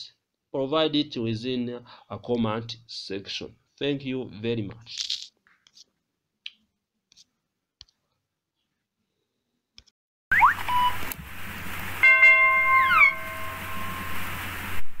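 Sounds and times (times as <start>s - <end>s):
electronic tones with falling glides: 10.3s - 11.2s, 12.0s - 14.8s
steady hiss and low hum: 10.6s - 15.0s
quick rising chirps: 12.6s - 14.2s.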